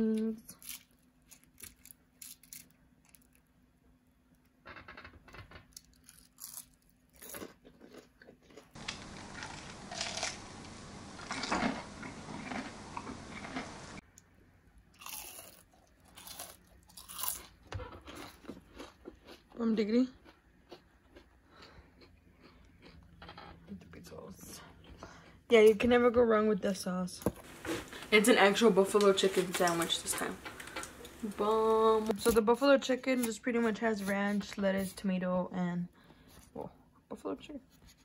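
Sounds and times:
crunching and chewing food: 0:00.4 - 0:03.8, 0:05.7 - 0:23.8.

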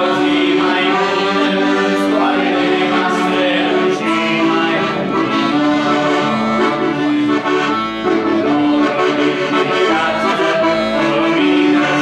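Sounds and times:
women singing a hymn: 0:00.0 - 0:07.2
accordion: 0:00.0 - 0:12.0.

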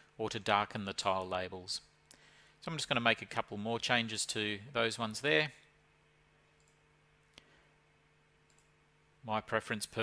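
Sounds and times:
faint steady hum: 0:00.0 - 0:10.0
computer mouse click: 0:06.6 - 0:07.5, 0:08.5 - 0:08.8.

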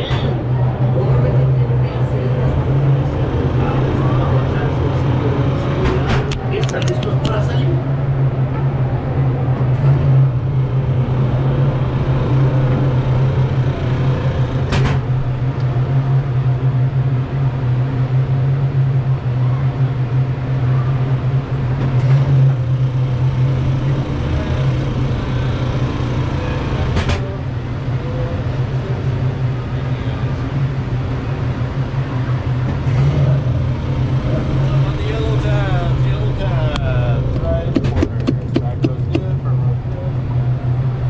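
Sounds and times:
ride car rolling on track: 0:00.0 - 0:41.0.

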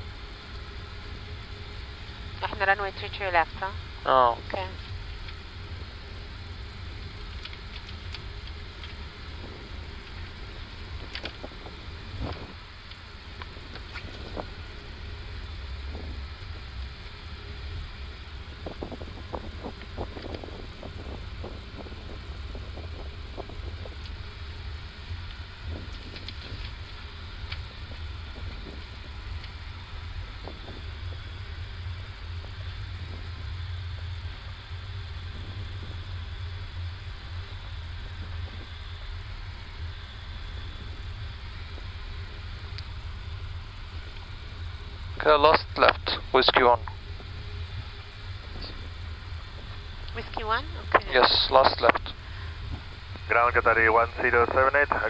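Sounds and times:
aircraft engines idling rumble: 0:00.0 - 0:55.0.

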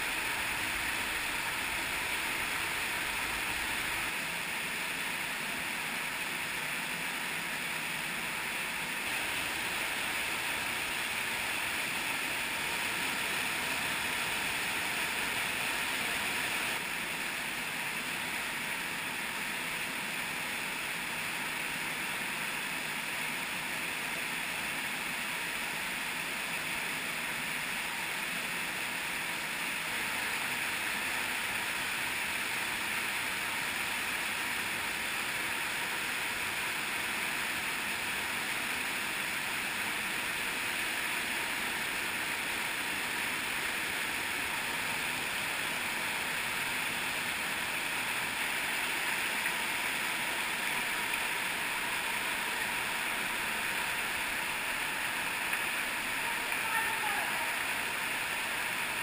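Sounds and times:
stream rushing over waterfalls: 0:00.0 - 0:59.0.

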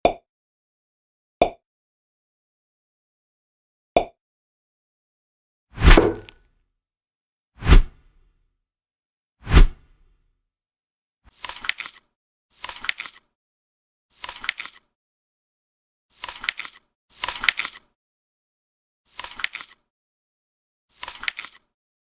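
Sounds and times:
deep plop sound effects: 0:05.8 - 0:06.3.

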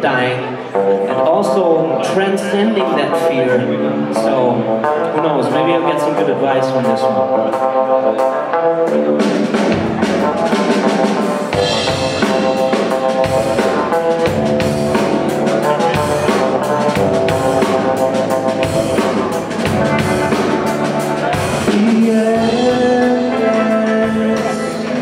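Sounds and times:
electric guitar notes: 0:00.0 - 0:25.0
held keyboard notes: 0:00.0 - 0:25.0
drum kit beat: 0:07.1 - 0:25.0.

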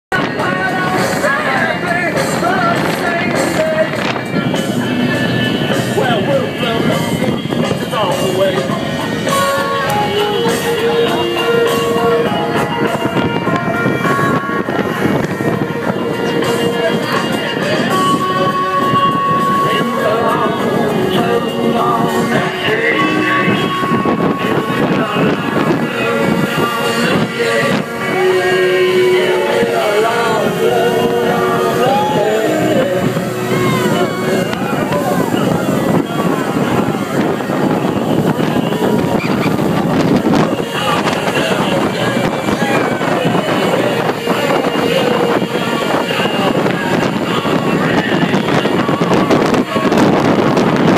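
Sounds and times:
boat engine noise: 0:00.1 - 0:50.9
passengers talking: 0:00.1 - 0:50.9
rushing wind: 0:00.1 - 0:50.9
high steady note: 0:00.2 - 0:47.6.

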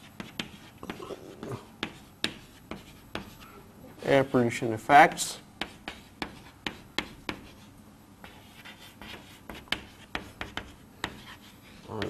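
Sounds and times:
pen scratching while writing: 0:00.0 - 0:01.0, 0:08.2 - 0:11.6.

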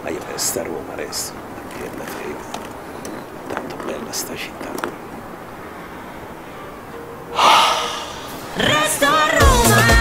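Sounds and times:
low steady hiss: 0:00.0 - 0:10.0
person gasping: 0:07.3 - 0:08.5.

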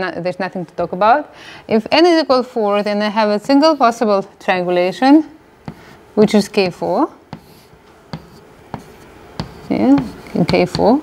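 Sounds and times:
chalk strokes on blackboard: 0:02.7 - 0:04.0, 0:05.6 - 0:11.0
chalk tapping on board: 0:05.6 - 0:11.0.

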